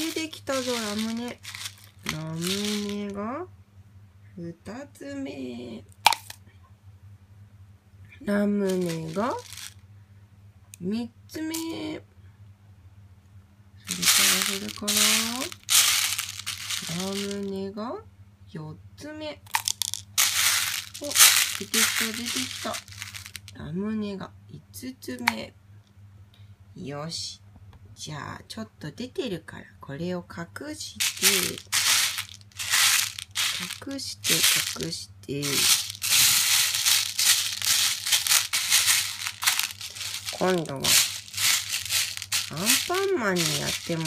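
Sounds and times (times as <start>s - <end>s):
candy wrapper crinkling: 0.0s - 3.2s, 8.6s - 9.8s, 13.9s - 17.5s, 19.5s - 23.6s, 31.0s - 44.0s
plastic pellets rattling in a bowl: 0.0s - 3.2s, 6.0s - 6.4s, 8.6s - 9.8s, 13.8s - 17.6s, 19.5s - 23.6s, 31.0s - 44.0s.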